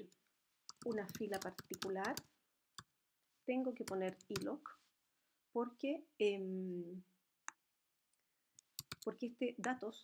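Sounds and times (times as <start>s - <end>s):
mouse and keyboard clicks: 0.0s - 2.9s, 3.8s - 4.5s, 8.6s - 9.8s.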